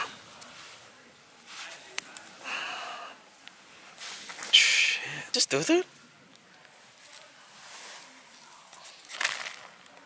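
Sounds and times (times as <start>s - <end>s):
rustling and scraping of gravel and leaves: 6.8s - 10.0s.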